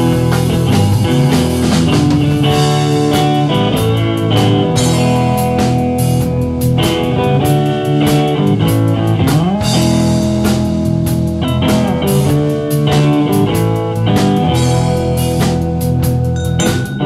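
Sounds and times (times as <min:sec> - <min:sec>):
drum kit: 0:00.0 - 0:17.0
electric guitars: 0:00.0 - 0:17.0.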